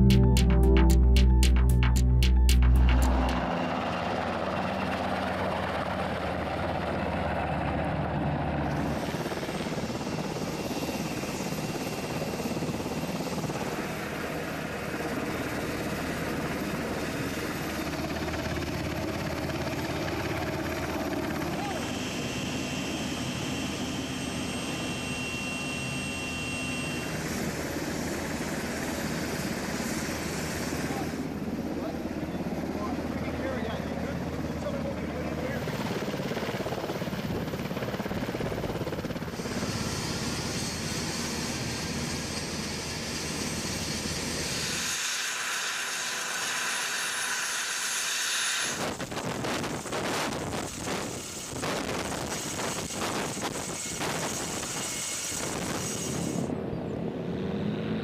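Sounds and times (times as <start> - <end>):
background music: 0.0 - 3.6
helicopter rotor and turbine: 0.0 - 58.0.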